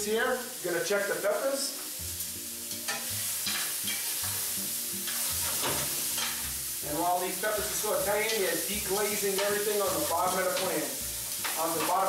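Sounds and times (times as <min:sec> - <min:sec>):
peppers sizzling in frying pan: 0:00.0 - 0:12.0.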